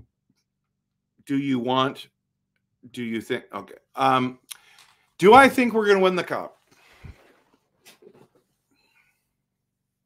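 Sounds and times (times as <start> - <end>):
faint breath or mouth sounds: 6.7 - 8.0.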